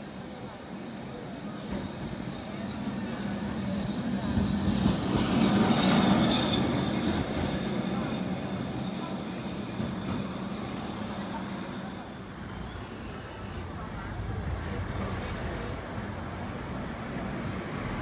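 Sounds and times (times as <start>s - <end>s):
tram rolling on rails: 0.0s - 18.0s.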